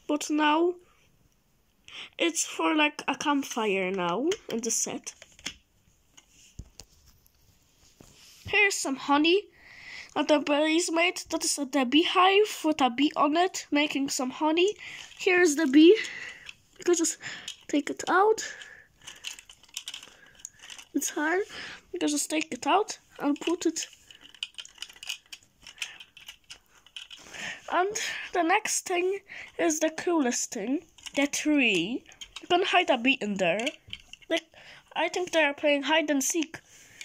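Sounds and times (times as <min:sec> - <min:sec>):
plastic lego pieces clicking: 0:03.4 - 0:05.6, 0:14.1 - 0:27.3, 0:29.3 - 0:35.4.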